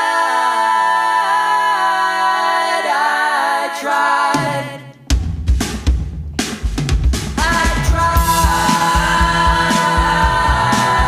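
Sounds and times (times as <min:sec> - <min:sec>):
kick drum and snare hits: 0:05.1 - 0:11.0.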